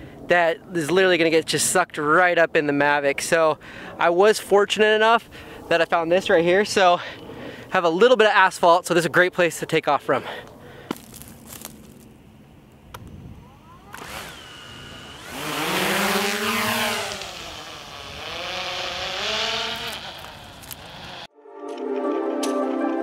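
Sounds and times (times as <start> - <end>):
high motor whine: 12.0 - 21.3
drone propeller buzz: 13.0 - 21.3
music: 21.3 - 23.0.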